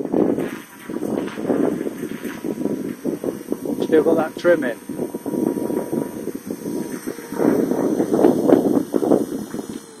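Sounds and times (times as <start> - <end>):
rc helicopter motor and rotor: 0.0 - 10.0
wind buffeting microphone: 0.0 - 10.0.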